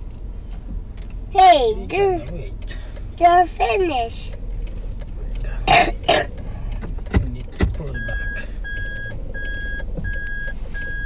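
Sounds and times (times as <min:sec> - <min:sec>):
car engine humming: 0:00.0 - 0:11.0
person coughing: 0:05.6 - 0:06.3
reversing beeps: 0:07.9 - 0:11.0.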